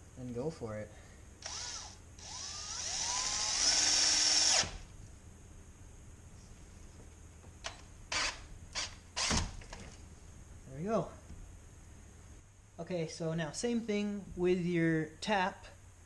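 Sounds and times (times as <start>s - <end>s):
power drill drilling: 1.4s - 4.8s.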